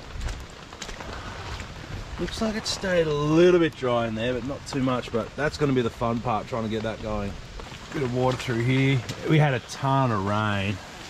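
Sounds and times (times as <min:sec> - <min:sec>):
gusty wind on microphone: 0:00.0 - 0:03.6
steady outdoor hiss: 0:00.0 - 0:11.0.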